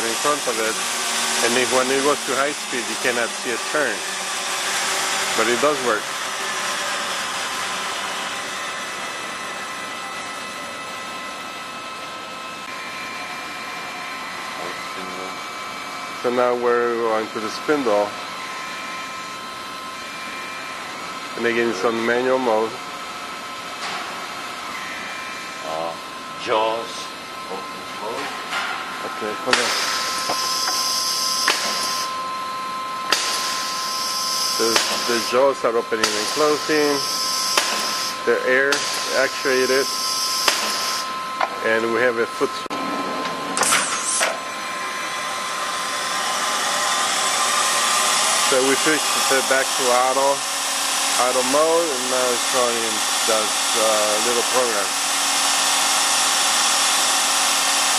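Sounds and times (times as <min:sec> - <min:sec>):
grinding spindle spinning: 0:00.0 - 0:09.6
high whining tones: 0:00.0 - 0:22.8, 0:23.8 - 0:54.9.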